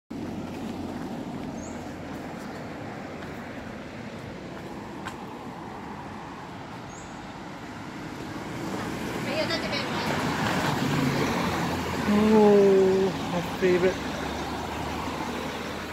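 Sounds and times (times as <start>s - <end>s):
low engine hum: 0.1s - 15.9s
roadside traffic: 0.1s - 15.9s.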